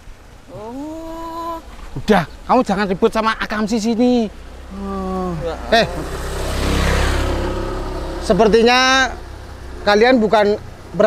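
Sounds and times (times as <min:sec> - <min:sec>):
motor vehicle passing by: 0:03.9 - 0:11.0.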